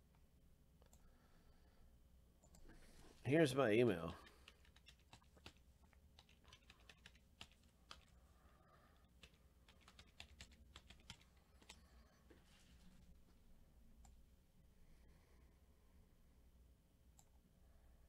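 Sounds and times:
keyboard typing: 4.2s - 8.2s, 9.0s - 12.0s.

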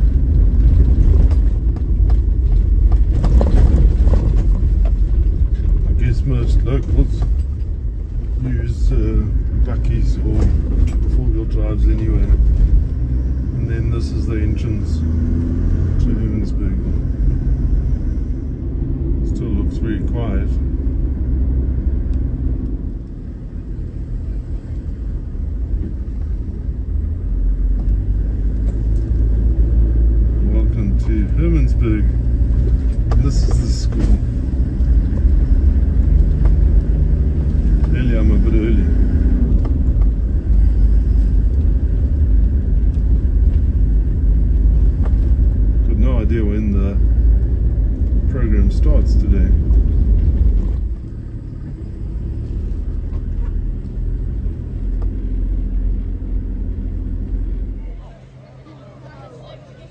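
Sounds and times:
engine and tyre rumble: 0.0s - 59.9s.

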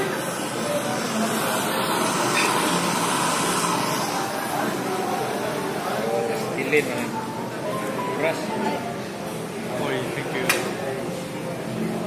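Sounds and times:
kitchen torch flame hissing: 0.0s - 6.1s.

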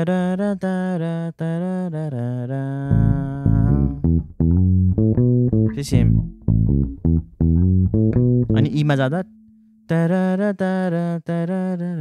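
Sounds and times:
man singing wordlessly: 0.0s - 4.0s, 5.7s - 6.2s, 9.9s - 12.0s
electric bass plucked notes: 2.9s - 9.6s.

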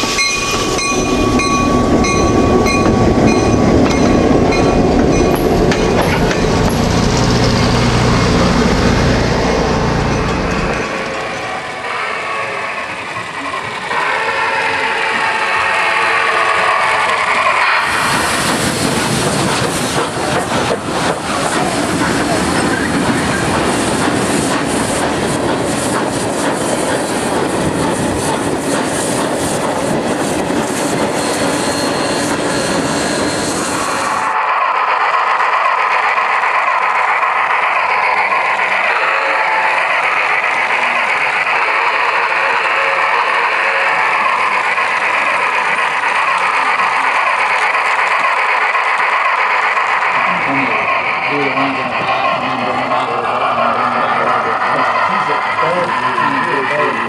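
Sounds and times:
train wheels clicking over rail joints: 0.0s - 11.5s, 12.9s - 33.9s, 34.7s - 57.0s
thin steady train sound: 0.0s - 57.0s.

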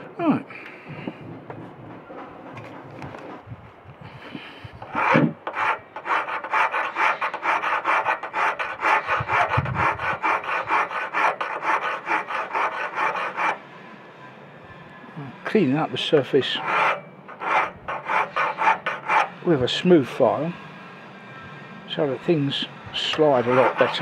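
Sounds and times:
hand file scraping metal tube: 4.8s - 13.6s, 15.5s - 20.4s, 22.2s - 24.0s.

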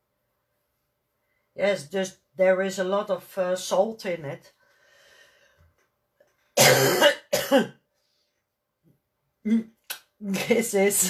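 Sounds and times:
woman coughing: 6.6s - 7.8s.

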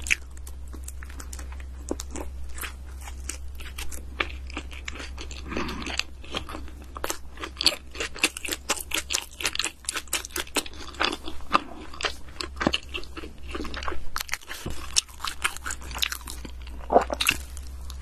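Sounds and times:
chewing crunchy sandwich: 0.0s - 18.0s.

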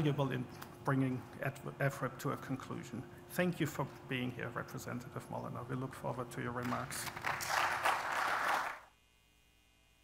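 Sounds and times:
faint electrical hum: 0.0s - 10.0s
audience applause: 7.0s - 8.9s.

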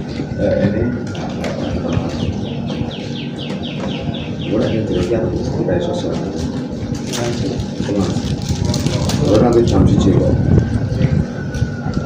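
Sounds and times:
bird chirping falling notes: 1.5s - 5.3s.

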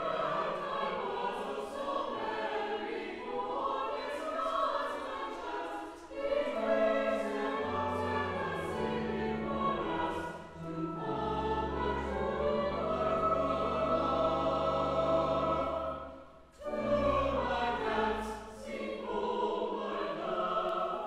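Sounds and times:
choir singing in parts: 0.0s - 21.0s.

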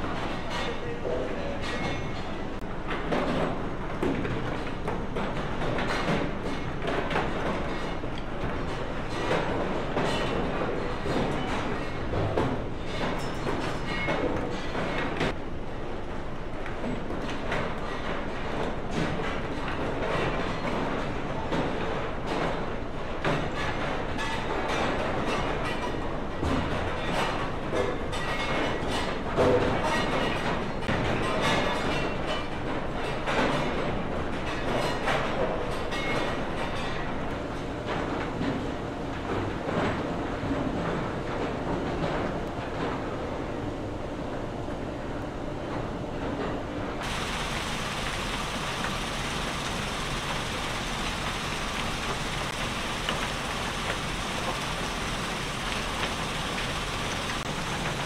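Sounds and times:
conveyor belt rumbling: 37.1s - 58.0s.

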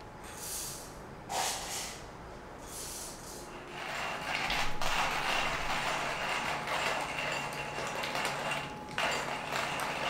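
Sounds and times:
hand grinder crunching coffee beans: 3.8s - 10.0s.

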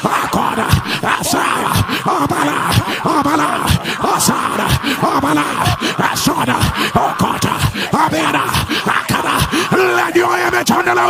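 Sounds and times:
man praying aloud in tongues: 0.0s - 11.0s.

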